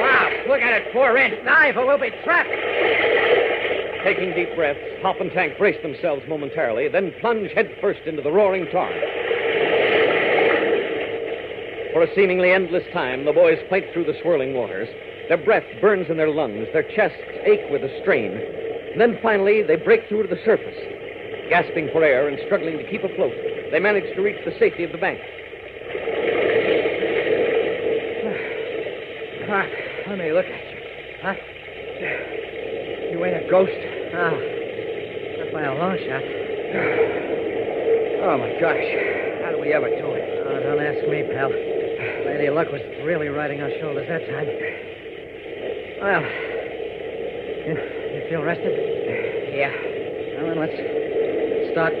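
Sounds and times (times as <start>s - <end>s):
constant low hum: 0.0s - 52.0s
radio drama dialogue: 0.0s - 52.0s
rushing churning water: 0.0s - 52.0s.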